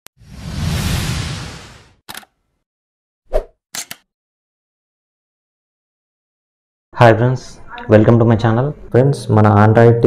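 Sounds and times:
quick clicks: 2.1 - 2.3, 3.8 - 4.1.

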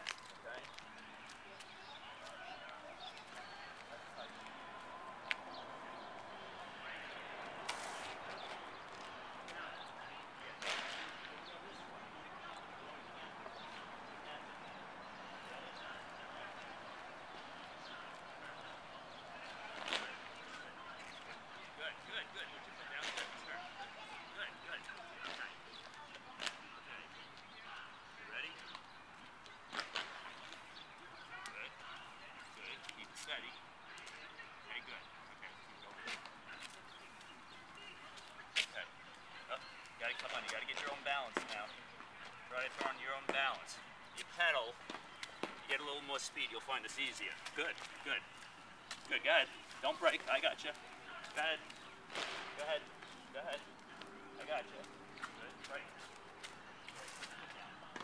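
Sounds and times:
faint distant voices: 0.0 - 58.0.

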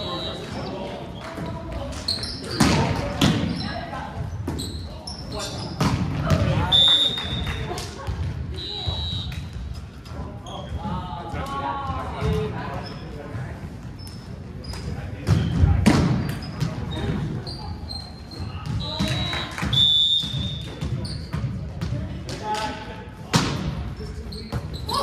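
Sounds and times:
sneaker squeaks on floor: 0.0 - 7.6, 10.4 - 11.0, 13.9 - 21.6, 24.0 - 25.0.

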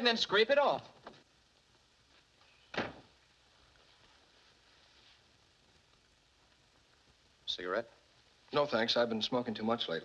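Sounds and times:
door closing: 2.7 - 3.2.

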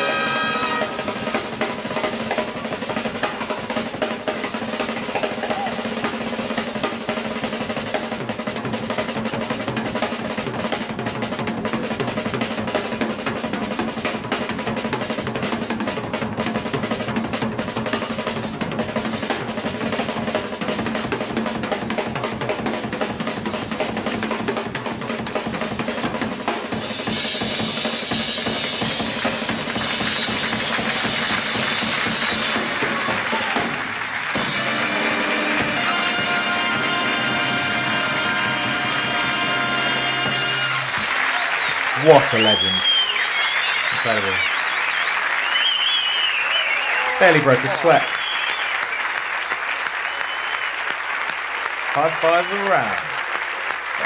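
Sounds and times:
big band sustained chord: 0.0 - 2.0, 34.4 - 41.0
drum kit solo: 0.0 - 45.6, 46.7 - 48.6.

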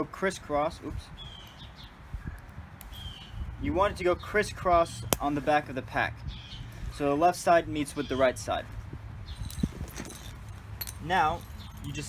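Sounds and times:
bird chirping: 1.1 - 4.4, 6.2 - 7.0, 11.3 - 12.0.

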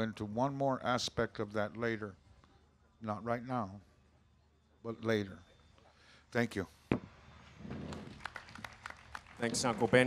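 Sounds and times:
scattered hand claps: 7.8 - 10.0.

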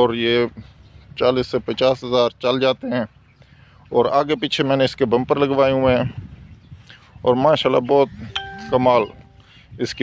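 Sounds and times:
man talking: 7.2 - 10.0
electronic ding-like tone: 8.3 - 9.5.

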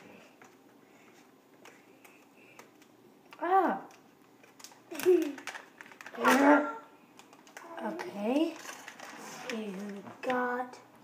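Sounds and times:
foil bag crinkling and clicking: 4.4 - 6.6.

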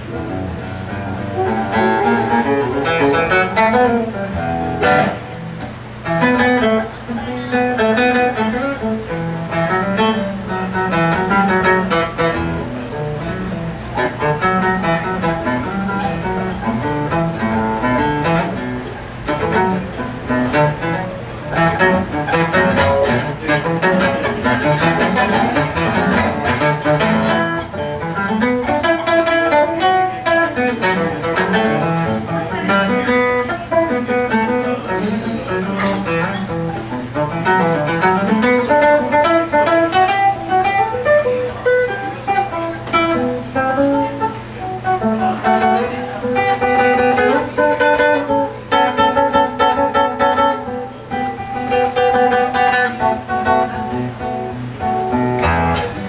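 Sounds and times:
fingerstyle classical guitar: 0.0 - 56.0.

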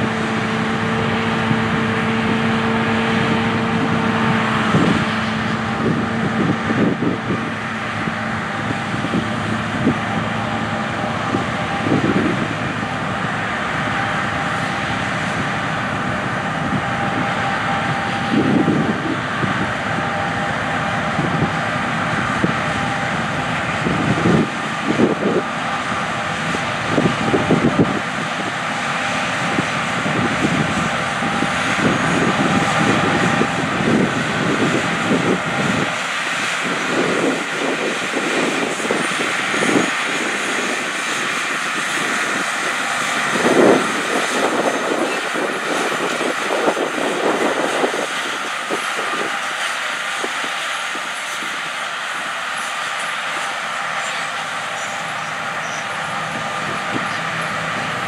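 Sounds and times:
combine harvester roar: 0.0 - 58.0.

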